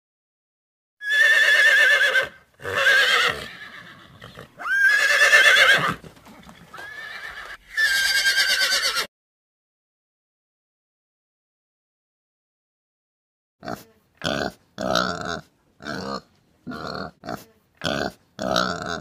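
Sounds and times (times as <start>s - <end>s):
horse neighing: 1.0s - 9.1s.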